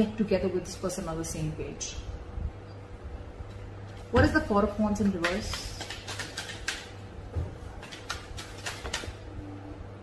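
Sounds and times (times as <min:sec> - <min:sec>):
cards being shuffled: 0:05.0 - 0:07.0, 0:07.8 - 0:09.2.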